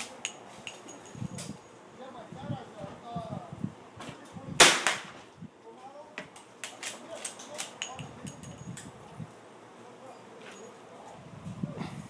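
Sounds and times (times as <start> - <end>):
loud rifle shot with echo: 4.6 - 5.2.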